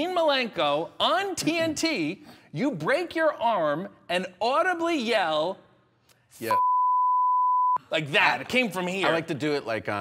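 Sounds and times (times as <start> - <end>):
censor beep tone: 6.6 - 7.8.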